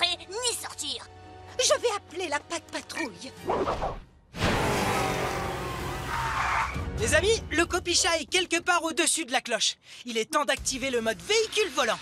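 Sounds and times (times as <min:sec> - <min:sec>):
vehicle sound effect: 0:04.4 - 0:06.8.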